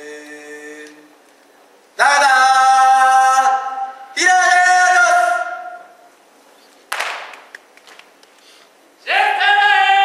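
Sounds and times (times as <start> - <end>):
sharp crack ringing in hall: 6.9 - 8.2.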